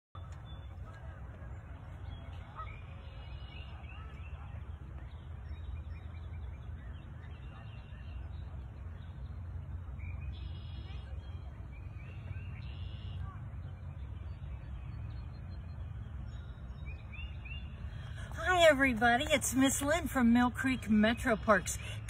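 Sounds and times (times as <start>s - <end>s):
birds calling: 0.2s - 22.0s
steady low rumble: 0.2s - 22.0s
geese honking: 2.4s - 3.4s.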